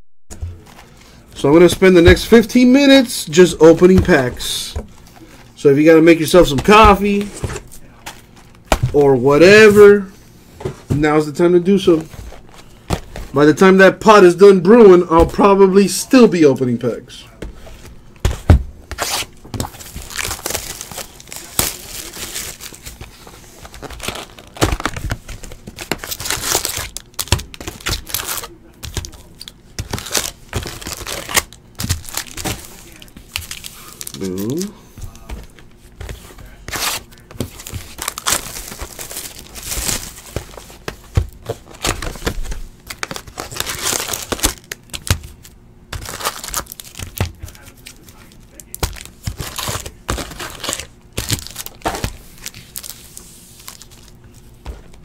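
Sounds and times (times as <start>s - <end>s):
plastic wrapping tearing and crinkling: 18.9s - 35.3s, 36.7s - 54.4s.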